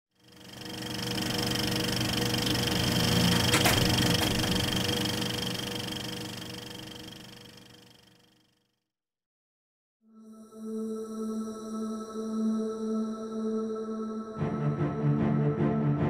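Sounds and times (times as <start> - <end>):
film projector running: 0.2 - 8.5.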